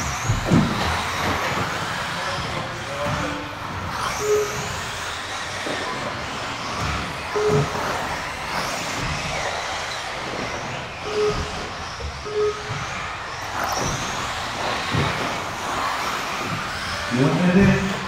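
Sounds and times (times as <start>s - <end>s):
cars knocking on track: 0.0s - 18.0s
rc car motor whine: 0.0s - 18.0s
short beeps: 4.2s - 4.8s, 7.3s - 8.2s, 11.0s - 12.8s.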